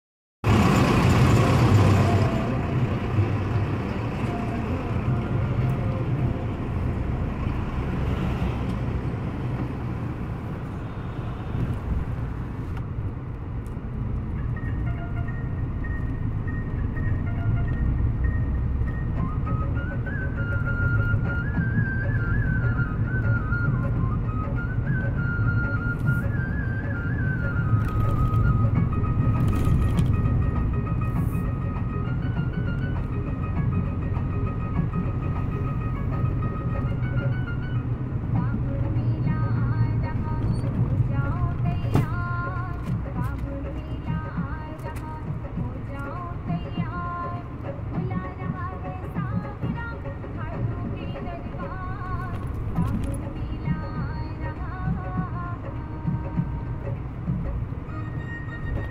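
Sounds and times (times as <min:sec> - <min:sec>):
engine and tyre rumble: 0:00.4 - 0:58.9.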